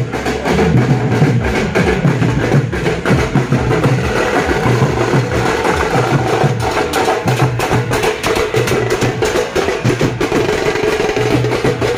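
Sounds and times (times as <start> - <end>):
marching drums beaten with sticks: 0.0 - 11.9.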